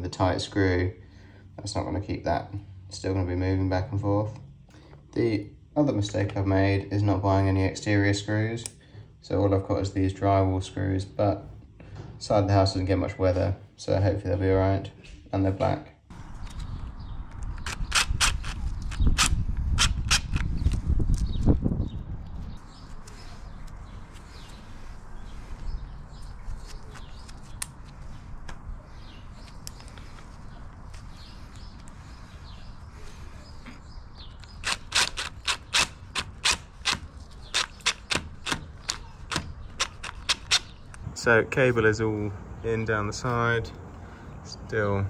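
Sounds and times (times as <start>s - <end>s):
impact driver rapid clicks: 34.6s - 40.7s.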